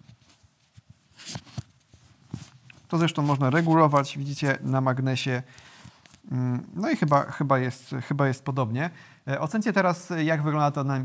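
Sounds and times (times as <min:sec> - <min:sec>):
fabric rustling: 0:00.0 - 0:04.9.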